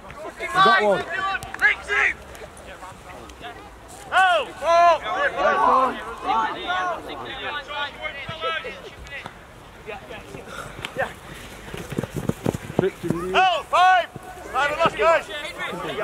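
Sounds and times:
people shouting calls: 0:00.2 - 0:02.3, 0:04.0 - 0:08.9, 0:13.2 - 0:16.0.

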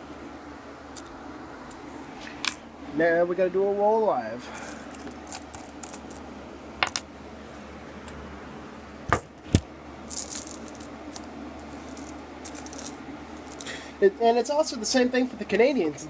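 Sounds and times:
coins clinking and jingling: 0:04.5 - 0:06.2, 0:10.1 - 0:13.7.

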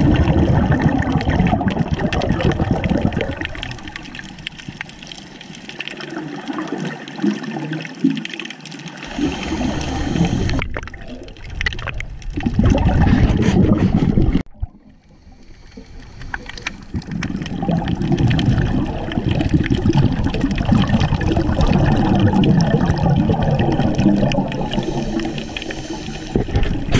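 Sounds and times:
underwater rushing and bubbles: 0:00.0 - 0:26.9.

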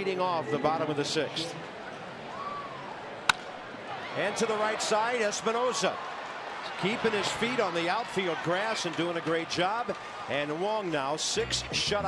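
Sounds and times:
ballpark crowd noise: 0:00.0 - 0:12.0
baseball bat cracking ball: 0:03.2 - 0:03.6.

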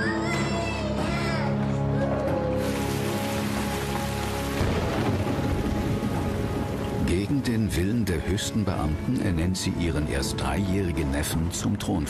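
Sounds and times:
background music held tones: 0:00.0 - 0:12.0
heavy rain pouring: 0:02.6 - 0:07.8.

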